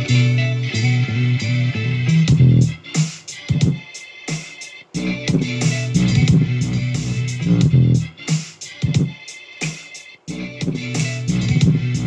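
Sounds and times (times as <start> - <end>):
hip-hop beat with heavy bass: 0.0 - 12.0.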